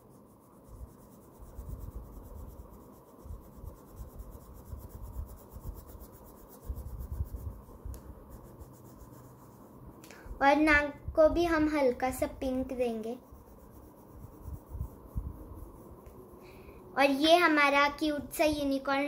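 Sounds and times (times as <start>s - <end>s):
crayon scratching on paper: 0.0s - 9.9s, 11.4s - 16.0s.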